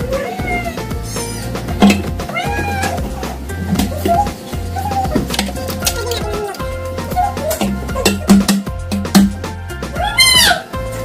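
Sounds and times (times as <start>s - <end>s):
kitten meowing: 0.0s - 1.5s, 2.2s - 3.1s
background music: 0.0s - 11.0s.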